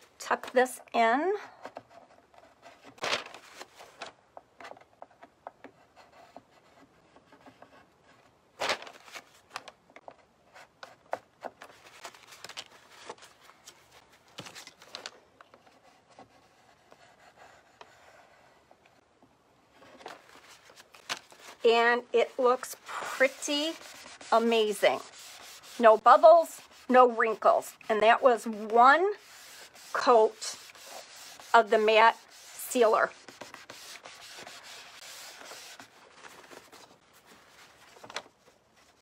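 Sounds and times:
plastic card scraping paper: 22.2s - 37.3s.

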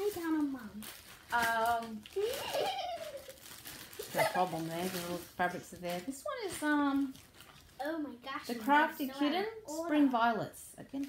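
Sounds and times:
plastic bags crinkling: 0.0s - 9.3s.

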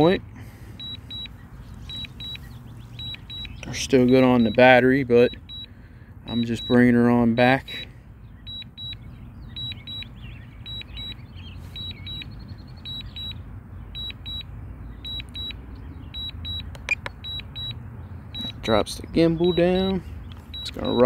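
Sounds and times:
remote controller beeping: 0.8s - 5.7s, 6.4s - 7.0s, 8.5s - 13.4s, 14.0s - 14.5s, 15.1s - 15.6s, 16.2s - 17.8s, 18.4s - 19.9s.

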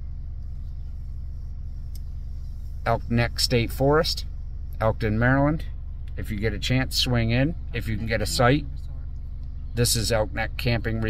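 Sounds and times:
car engine hum inside cabin: 0.0s - 11.0s.

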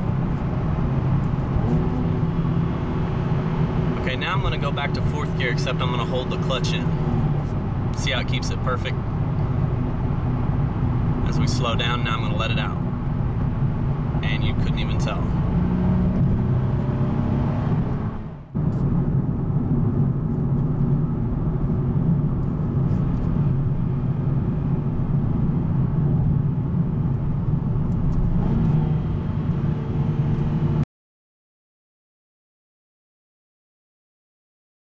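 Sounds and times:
car engine and road noise: 0.0s - 30.9s.

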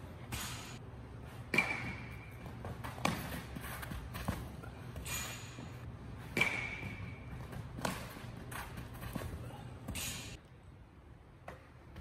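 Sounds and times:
footsteps on artificial turf: 2.1s - 6.3s, 6.9s - 10.0s.

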